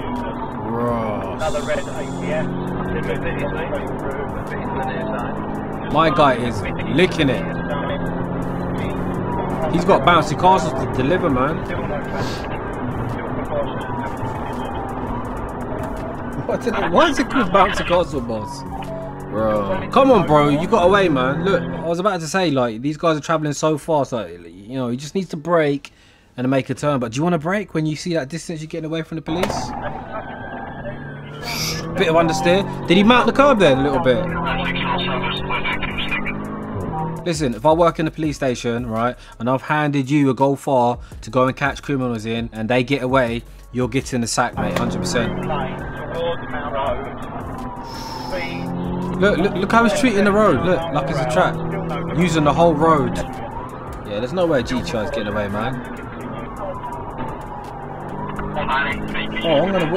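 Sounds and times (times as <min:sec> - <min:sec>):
car engine drone from inside: 0:00.0 - 0:21.9, 0:29.3 - 0:37.3, 0:44.6 - 0:59.9
road noise: 0:00.0 - 0:26.4, 0:28.7 - 0:40.3, 0:41.0 - 0:59.9.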